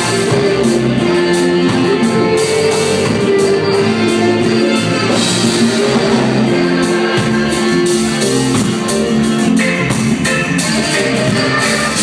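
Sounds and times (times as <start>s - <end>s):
bass guitar: 0.0s - 12.0s
drum kit and cymbals: 0.0s - 12.0s
electric guitars: 0.0s - 12.0s.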